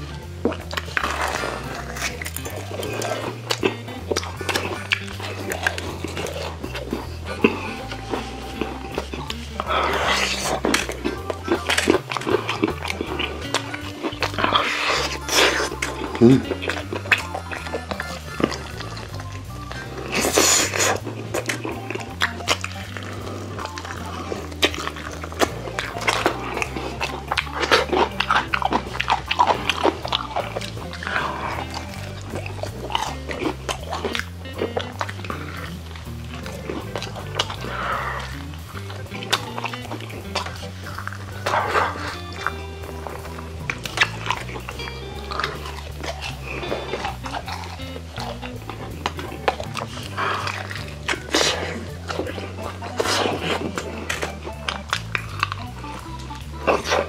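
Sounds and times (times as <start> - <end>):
background music: 0.0 - 57.0
crunchy chewing and biting: 0.0 - 57.0.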